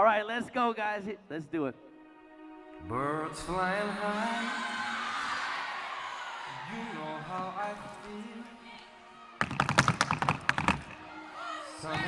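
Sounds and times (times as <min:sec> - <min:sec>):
recorded voice singing: 0:02.8 - 0:05.5, 0:06.5 - 0:08.7, 0:11.6 - 0:12.0
tap dance feet on stage: 0:09.4 - 0:11.0.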